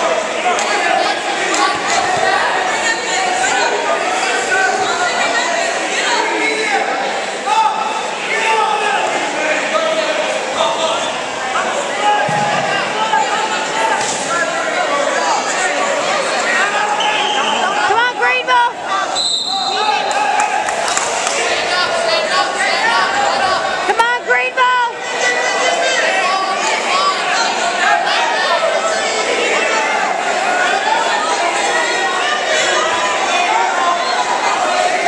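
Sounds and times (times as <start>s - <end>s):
spectators talking: 0.0s - 35.0s.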